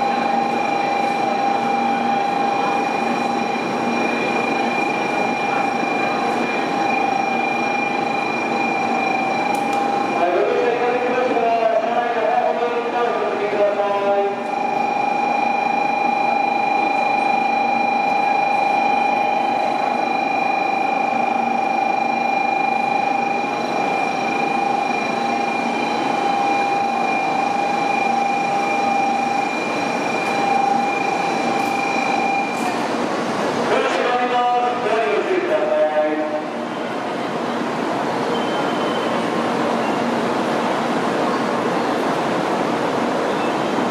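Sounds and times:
train high whine: 0.0 - 43.9.

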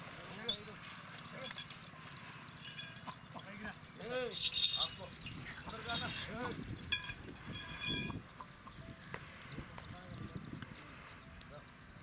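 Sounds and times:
men's voices: 3.2 - 6.8.

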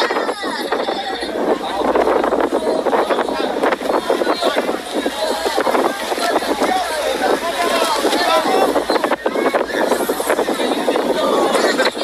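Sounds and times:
crowd shouting and screaming: 0.0 - 1.8.

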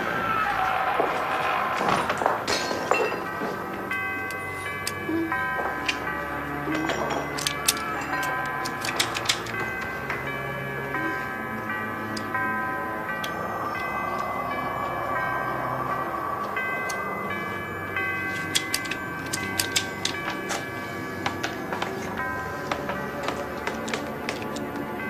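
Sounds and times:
sustained tone soundtrack music: 0.0 - 25.0
clock-like ticking notes: 3.4 - 25.0.

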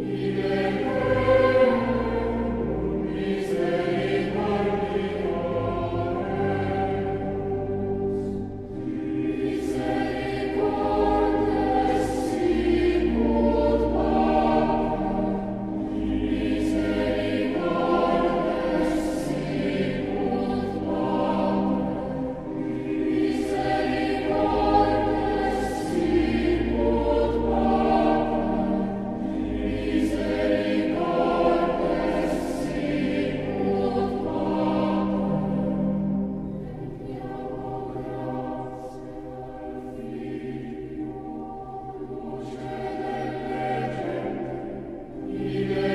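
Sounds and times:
choir singing slow sacred piece: 0.0 - 45.9.

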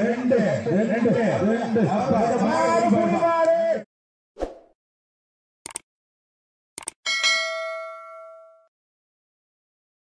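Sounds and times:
bright bell ding: 7.1 - 8.7.

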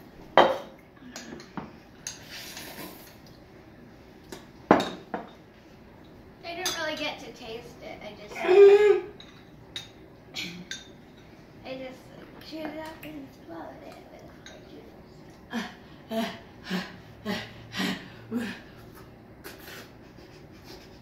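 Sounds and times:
mouth and breath sounds: 15.5 - 21.0.

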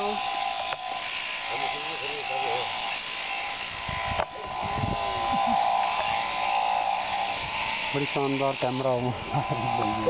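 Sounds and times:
electric shears buzzing: 0.0 - 10.0.

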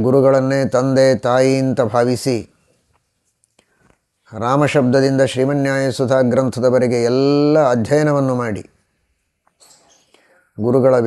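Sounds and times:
man speaking: 0.0 - 2.5, 4.3 - 8.7, 10.6 - 11.0.

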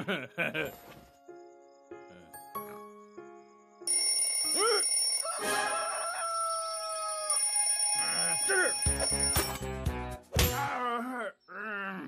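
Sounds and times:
cartoon background music: 0.0 - 6.2, 7.1 - 11.0
alarm clock bell ringing: 3.9 - 9.7.

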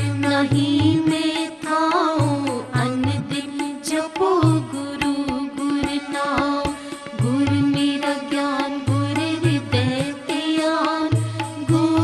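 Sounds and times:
person singing devotional melody: 0.0 - 12.0.

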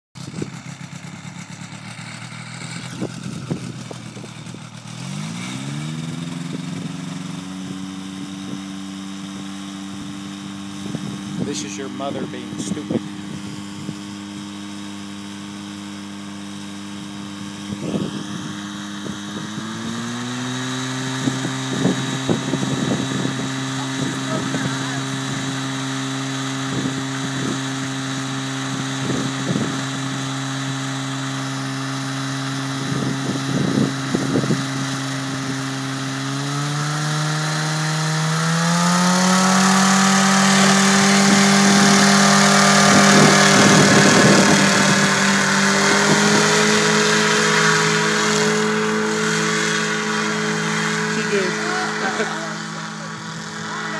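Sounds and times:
propeller engine revving: 0.1 - 53.9.

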